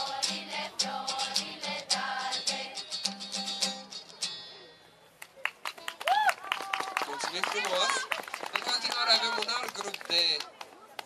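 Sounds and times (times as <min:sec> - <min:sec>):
children's choir singing: 0:00.0 - 0:03.0
strummed acoustic guitar: 0:00.0 - 0:04.7
people clapping: 0:05.2 - 0:11.0.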